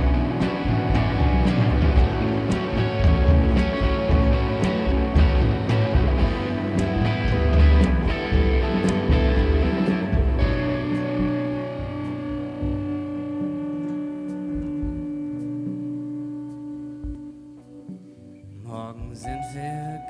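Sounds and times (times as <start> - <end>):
rock band playing live: 0.0 - 18.2
sustained guitar chords: 0.0 - 20.0.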